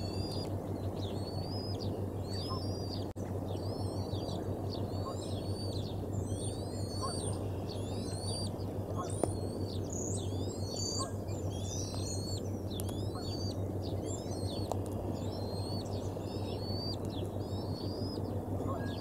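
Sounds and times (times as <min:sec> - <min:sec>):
high-pitched bird calls: 0:00.0 - 0:19.0
steady low hum: 0:00.0 - 0:19.0.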